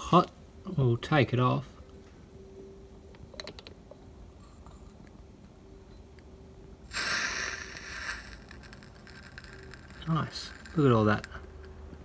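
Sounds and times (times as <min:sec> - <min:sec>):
bottle scraping rustle: 0:06.9 - 0:11.4.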